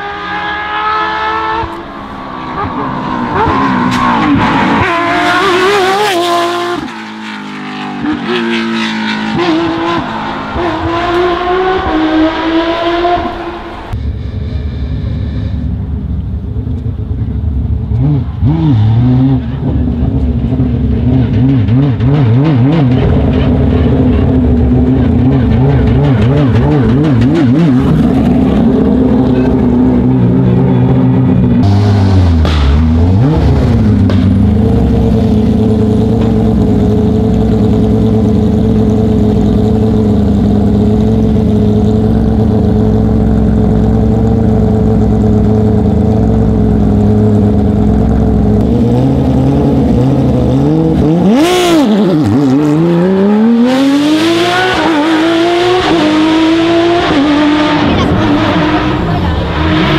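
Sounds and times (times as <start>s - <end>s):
car engine idling loudly: 22.9s - 33.0s, 33.6s - 48.6s.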